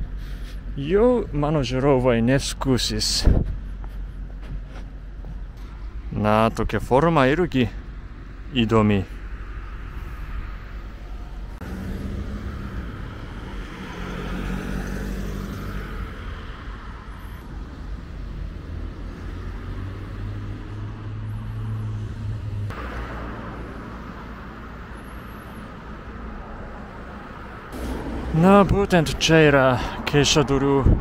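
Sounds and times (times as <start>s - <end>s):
vehicles driving by: 0.0s - 31.0s.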